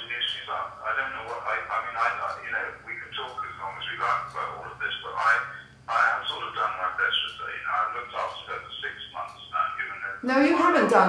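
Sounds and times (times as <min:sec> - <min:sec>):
voice over phone loudspeaker: 0:00.0 - 0:11.0.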